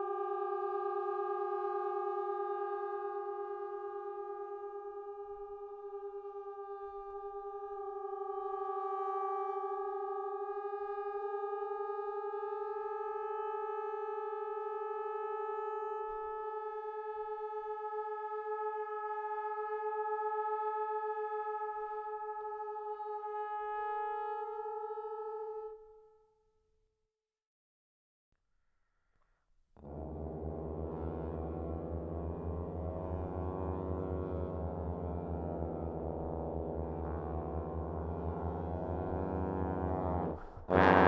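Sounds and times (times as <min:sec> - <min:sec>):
trombones holding sustained chords: 0:29.8 - 0:41.0.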